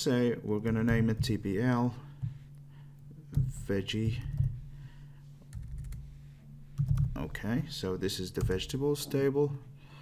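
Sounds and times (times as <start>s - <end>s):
steady low hum: 0.0s - 10.0s
computer keyboard keystrokes: 5.5s - 6.0s, 6.8s - 7.2s.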